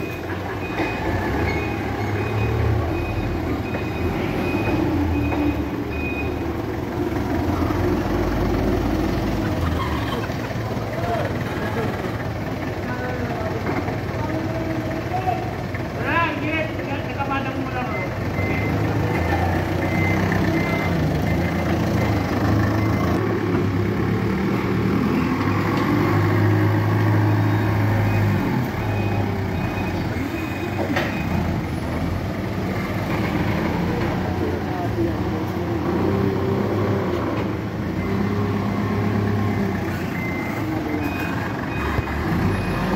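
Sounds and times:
reversing alarm beeps: 0.0s - 6.4s, 17.8s - 23.2s, 27.0s - 31.6s, 38.0s - 42.9s
forklift engine revving: 0.0s - 16.0s, 18.0s - 42.9s.

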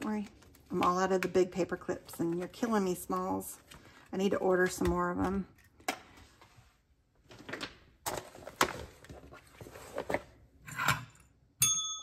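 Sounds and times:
paper and plastic rustling: 6.2s - 10.4s
desk call bell ring: 11.6s - 12.0s.

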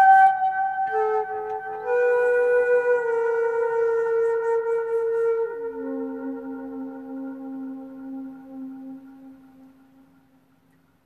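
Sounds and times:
flute holding low note: 0.0s - 10.0s.

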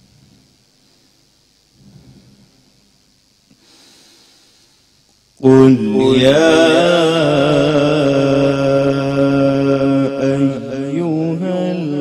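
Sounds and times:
man chanting melodically: 5.4s - 12.0s.

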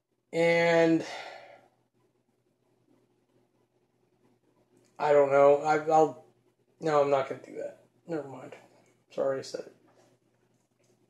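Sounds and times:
man sighing: 0.9s - 1.6s.

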